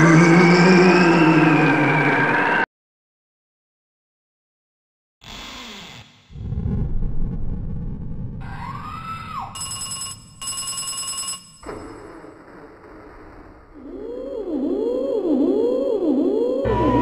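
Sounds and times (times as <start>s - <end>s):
rising and falling screech: 0.0s - 2.7s, 16.6s - 17.0s.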